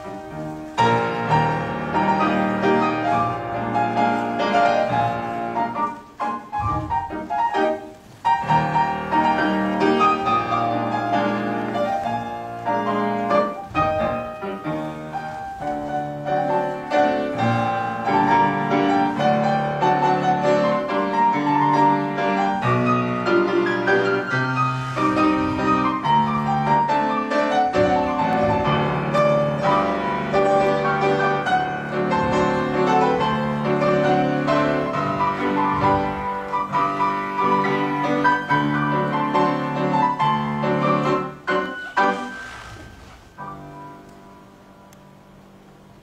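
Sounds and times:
solo piano playing: 0:00.0 - 0:46.0.

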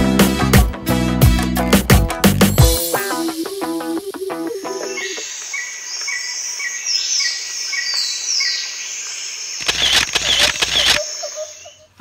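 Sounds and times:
bird chirping: 0:02.9 - 0:12.0
harsh bird calls: 0:03.6 - 0:12.0.

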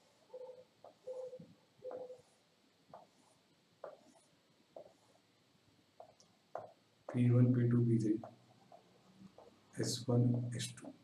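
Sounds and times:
stylus scratching on tablet: 0:00.0 - 0:05.3, 0:06.0 - 0:07.2, 0:08.0 - 0:09.9.

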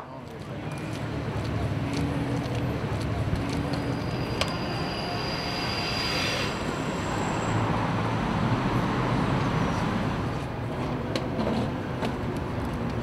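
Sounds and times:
thin high whine: 0:03.8 - 0:07.8.

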